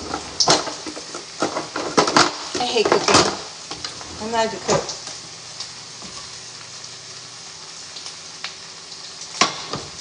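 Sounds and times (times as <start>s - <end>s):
bacon sizzling in a frying pan: 0.0s - 10.0s.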